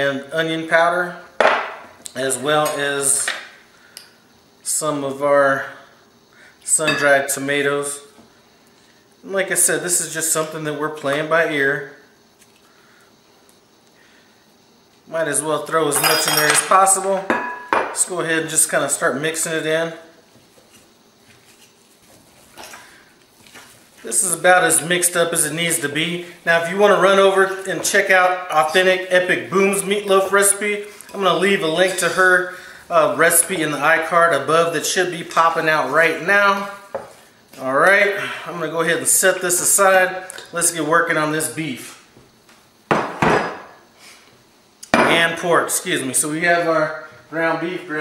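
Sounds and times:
glass bowl knocking on countertop: 42.9 - 43.4.

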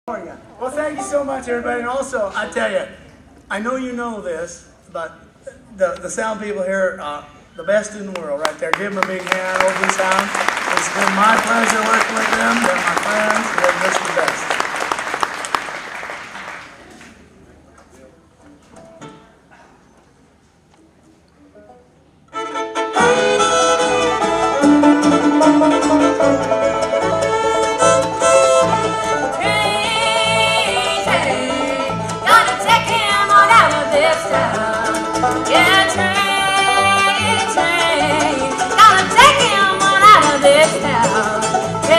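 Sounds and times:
bluegrass band playing: 0.1 - 4.0, 4.7 - 17.0, 21.4 - 41.9
audience applause: 8.4 - 17.2.

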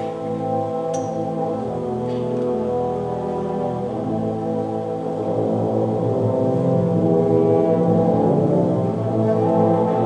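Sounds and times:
wind ensemble sustained chords: 0.0 - 10.0.

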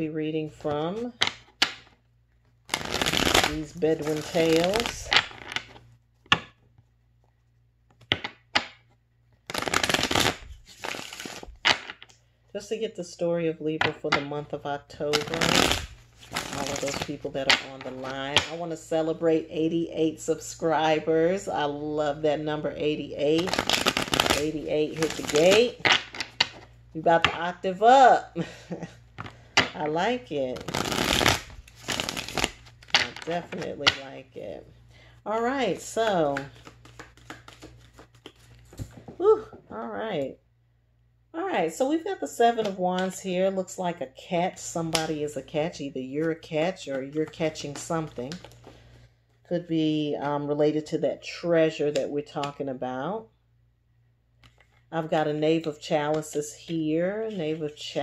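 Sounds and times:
soft card rustling: 0.4 - 12.5, 15.0 - 19.6, 22.6 - 27.5, 28.8 - 39.9
cards riffle-shuffled: 2.7 - 12.1, 15.1 - 18.6, 23.4 - 27.4, 30.6 - 34.1, 35.6 - 39.2.

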